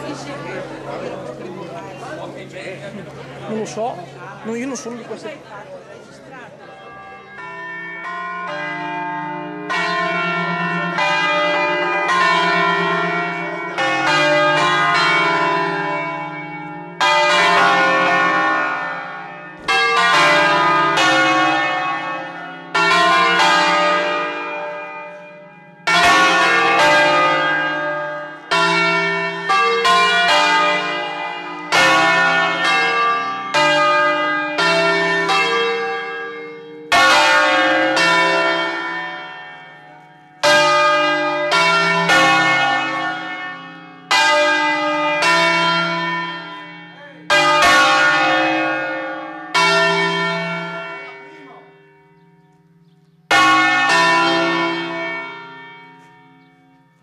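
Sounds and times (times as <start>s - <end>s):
church bells ringing: 0.0s - 57.0s.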